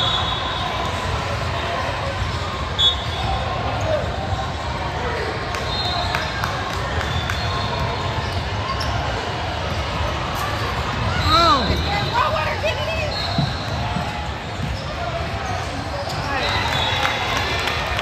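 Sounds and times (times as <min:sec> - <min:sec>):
sneaker squeaks: 0:02.2 - 0:04.2, 0:05.6 - 0:17.1.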